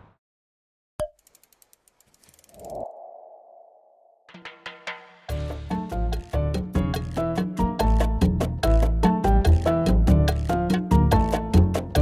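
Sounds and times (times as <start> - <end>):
faint ticks: 1.0 - 2.8.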